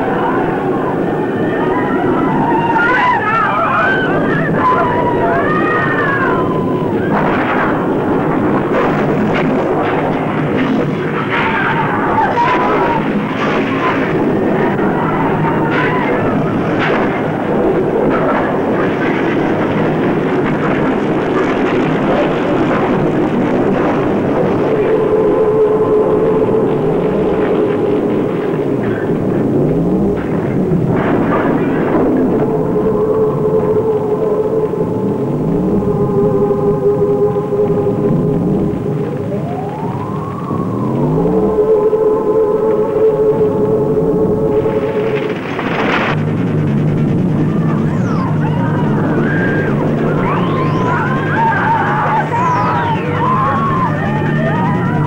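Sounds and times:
eerie drone music: 0:00.0 - 0:55.0
loud rumbling din: 0:00.0 - 0:55.0
swell of noise: 0:00.0 - 0:55.0.

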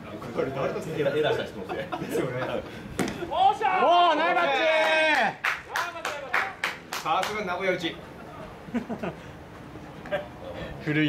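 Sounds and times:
hand clapping: 0:04.8 - 0:07.4.

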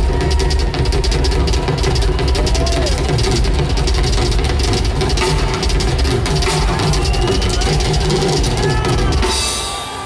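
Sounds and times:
rapid drum strikes: 0:00.0 - 0:09.8.

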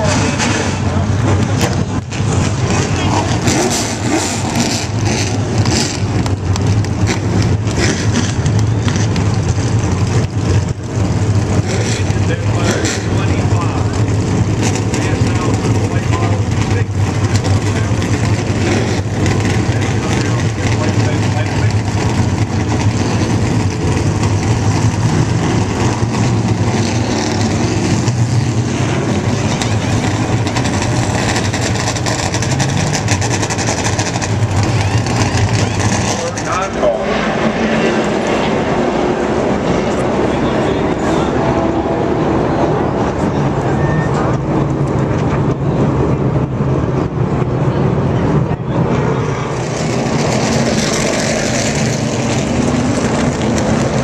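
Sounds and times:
car engines idling: 0:00.0 - 0:54.0.

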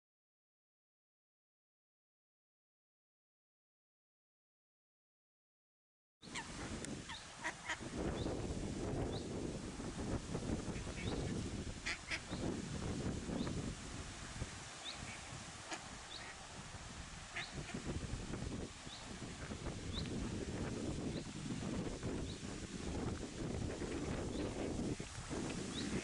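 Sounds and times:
ducklings peeping: 0:06.2 - 0:08.4, 0:10.7 - 0:12.5, 0:14.8 - 0:16.4, 0:17.3 - 0:17.9
duck quacking: 0:06.3 - 0:07.8, 0:11.8 - 0:12.3, 0:17.3 - 0:17.9.

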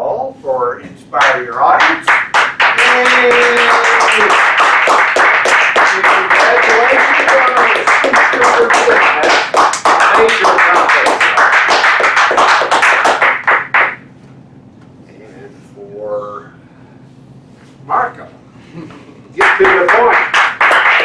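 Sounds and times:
audience applauding: 0:01.2 - 0:14.0, 0:19.4 - 0:21.0.

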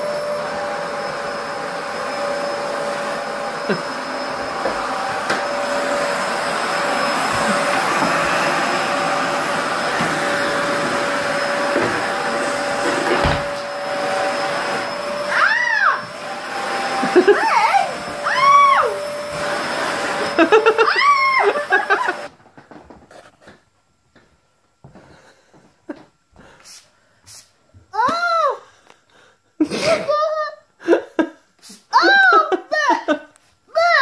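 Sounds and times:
vacuum cleaner running: 0:00.0 - 0:22.3.

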